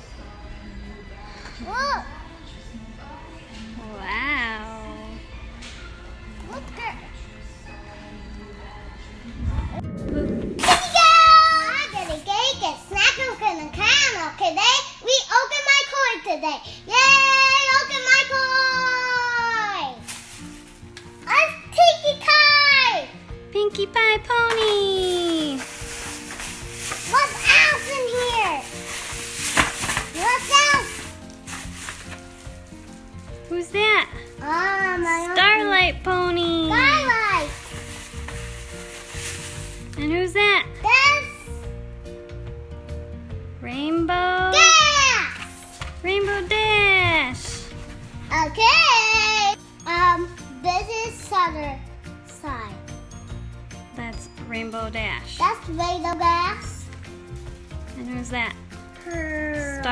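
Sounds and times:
plastic bag crinkling: 0:20.0 - 0:20.9, 0:24.6 - 0:35.0, 0:36.7 - 0:40.0.

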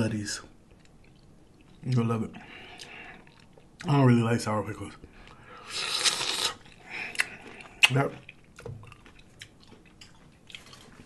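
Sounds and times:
wet crackly eating noise: 0:00.5 - 0:04.3, 0:05.0 - 0:11.0.

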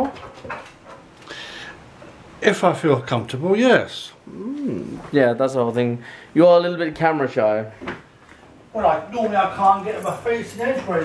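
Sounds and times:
dog whining: 0:04.3 - 0:05.1.

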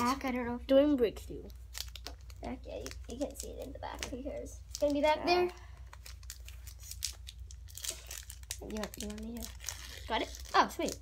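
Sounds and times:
foil pack crinkling and tearing: 0:01.5 - 0:11.0.

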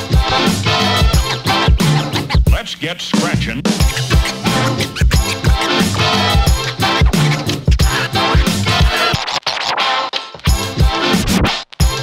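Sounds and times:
music with drum beat: 0:00.0 - 0:12.0
record scratching: 0:00.0 - 0:12.0.

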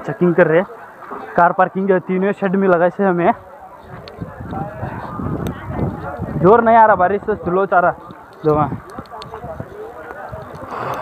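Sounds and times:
rain and wind on microphone: 0:03.4 - 0:11.0.

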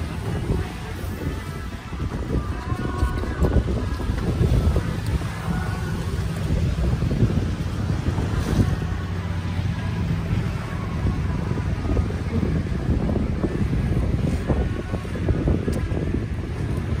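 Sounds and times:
choppy water against boat: 0:00.0 - 0:17.0
low steady hum: 0:00.0 - 0:17.0
wind buffeting microphone: 0:00.0 - 0:17.0.

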